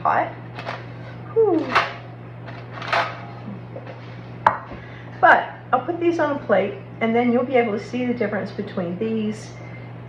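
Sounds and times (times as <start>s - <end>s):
steady low hum: 0.0s - 10.0s
aluminium foil rustling: 1.6s - 3.2s.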